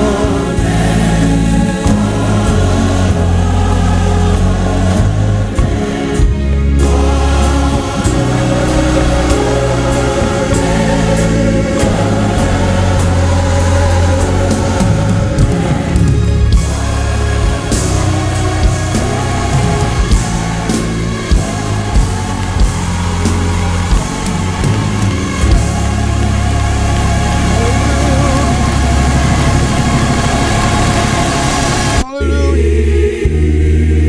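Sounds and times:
gospel choir music: 0.0s - 34.0s.

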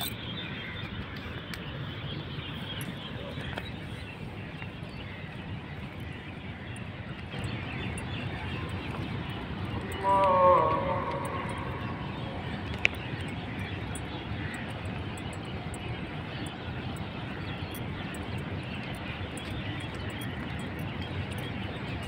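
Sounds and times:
city traffic rumble: 0.0s - 22.0s.

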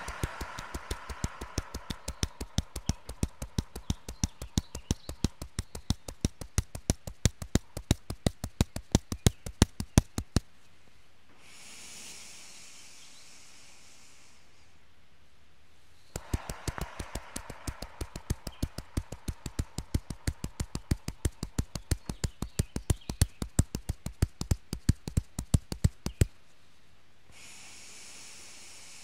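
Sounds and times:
soft breath in: 0.0s - 2.5s, 11.3s - 14.8s, 26.6s - 29.0s
fists tapping on chest: 0.0s - 10.5s, 16.2s - 26.3s.

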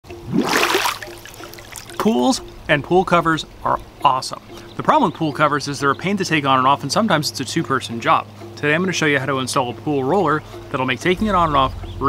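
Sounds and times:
water running off: 0.1s - 3.2s
swimmer splashing water: 0.1s - 3.7s.

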